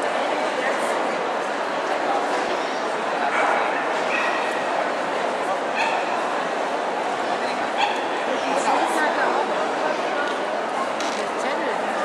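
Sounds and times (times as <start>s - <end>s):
chatter of many people: 0.0s - 12.0s
dogs yipping: 5.8s - 6.1s, 7.8s - 8.2s.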